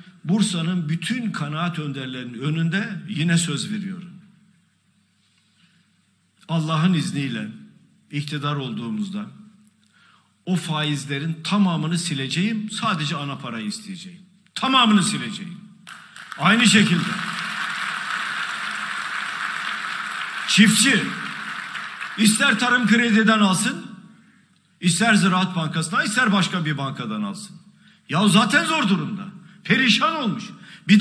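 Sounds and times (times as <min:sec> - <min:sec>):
faint steady hiss: 0:00.0 - 0:31.0
audience applauding: 0:15.9 - 0:23.1
man speaking: 0:16.3 - 0:17.3, 0:20.5 - 0:21.4, 0:22.2 - 0:24.0.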